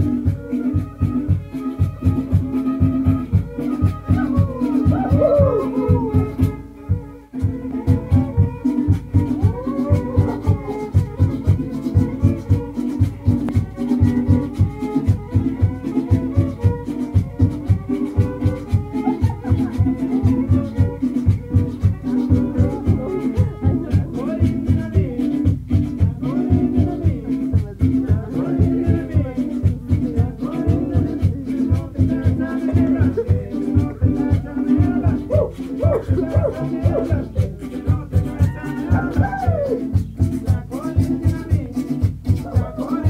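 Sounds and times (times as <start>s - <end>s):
steady beat: 0.0s - 43.0s
bowed string melody: 5.8s - 24.0s.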